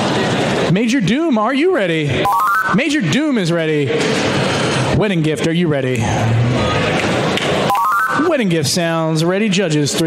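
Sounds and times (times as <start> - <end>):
arena noise: 0.0 - 10.0
electronic beeps rising in pitch: 2.2 - 3.1, 7.7 - 8.4.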